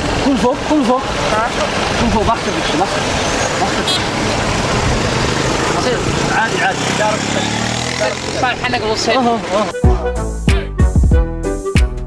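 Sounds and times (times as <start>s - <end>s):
road traffic rumble and hiss: 0.0s - 9.8s.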